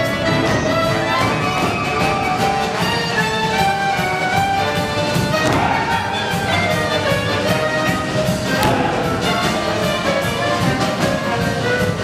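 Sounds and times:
orchestra playing lively dance tune: 0:00.0 - 0:12.0.

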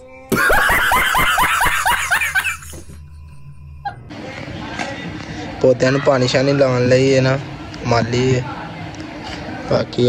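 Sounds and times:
faint steady hum: 0:00.0 - 0:05.6
man laughing hard: 0:00.3 - 0:03.0.

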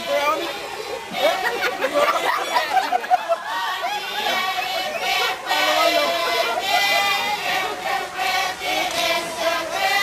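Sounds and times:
women singing in chorus: 0:00.0 - 0:10.0.

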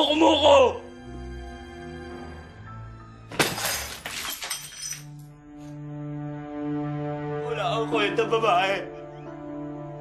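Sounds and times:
glass shattering: 0:03.3 - 0:05.3.

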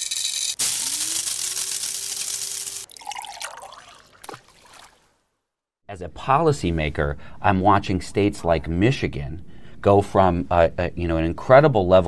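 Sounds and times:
coffee pouring into a mug: 0:02.3 - 0:04.9.

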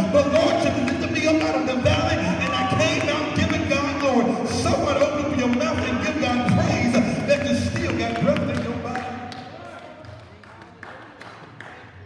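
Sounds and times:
man singing through pa: 0:00.0 - 0:09.2
music: 0:00.0 - 0:09.3.

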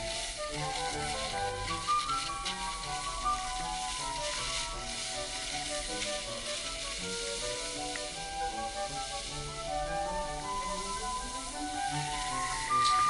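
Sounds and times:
background music: 0:00.0 - 0:13.0
skis sliding on snow: 0:00.0 - 0:13.0.

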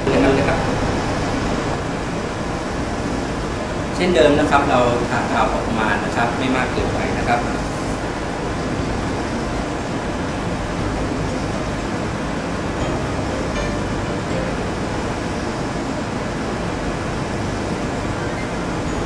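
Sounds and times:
room noise hiss: 0:00.0 - 0:19.0.

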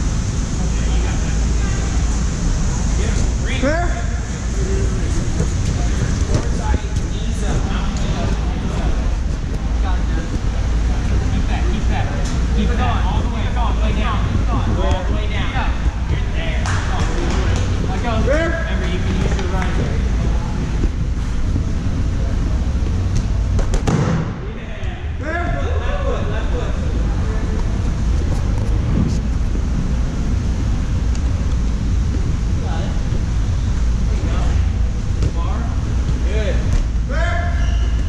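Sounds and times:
low rumble of handheld camera: 0:00.0 - 0:38.0
sharp knocks and thuds: 0:23.1 - 0:24.4.

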